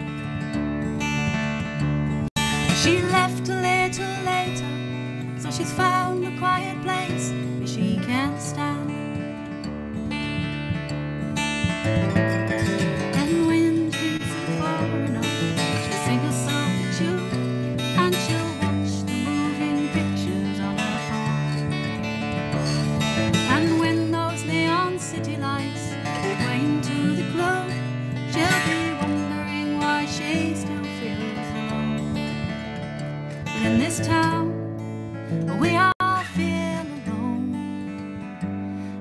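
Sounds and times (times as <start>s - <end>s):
acoustic guitar strumming: 0.0s - 39.0s
woman singing: 2.4s - 9.3s, 12.9s - 21.6s, 23.2s - 32.4s, 33.4s - 34.7s, 35.4s - 38.6s.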